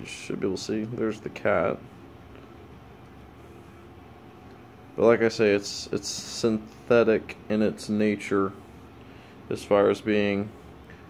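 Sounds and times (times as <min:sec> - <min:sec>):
low indoor room hum: 0:00.0 - 0:11.0.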